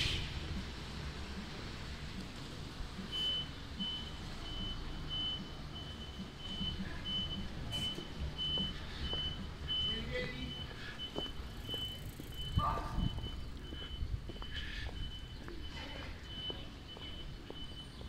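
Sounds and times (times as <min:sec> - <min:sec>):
low rumble of street noise: 0:00.0 - 0:18.0
reversing warning beeper: 0:03.0 - 0:18.0.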